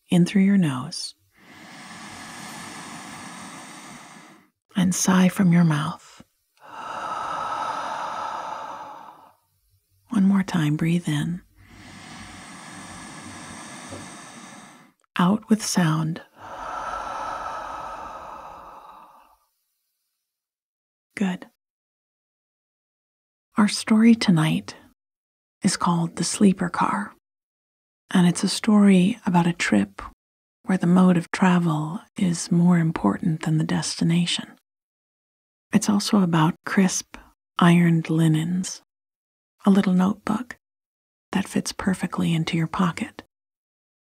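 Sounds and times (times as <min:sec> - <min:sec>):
woman breathing in through nose: 0:01.3 - 0:04.6, 0:06.6 - 0:09.4, 0:11.6 - 0:15.0, 0:16.3 - 0:19.4
woman sighing: 0:06.6 - 0:09.3, 0:16.4 - 0:19.4.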